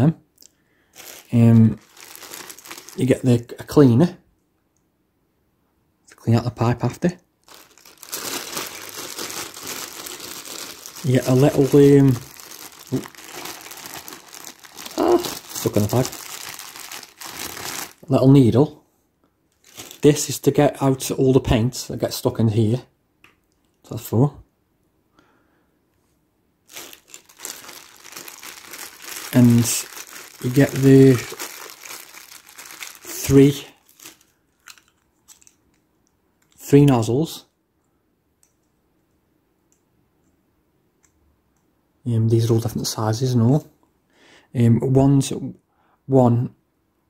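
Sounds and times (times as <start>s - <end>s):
plastic packaging crinkling: 0.9s - 3.5s, 7.4s - 18.2s, 19.5s - 20.4s, 26.7s - 35.9s.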